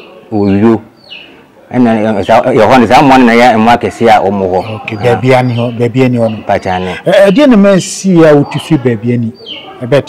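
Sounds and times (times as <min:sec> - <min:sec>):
man talking: 0:00.3 - 0:00.9, 0:01.7 - 0:10.0.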